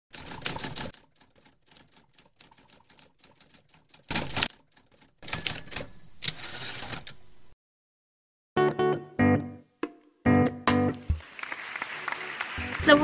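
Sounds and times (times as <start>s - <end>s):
rapid typewriter key clicks: 0.1s - 5.9s
typewriter clatter: 0.1s - 7.2s
typewriter carriage bell: 5.2s - 7.2s.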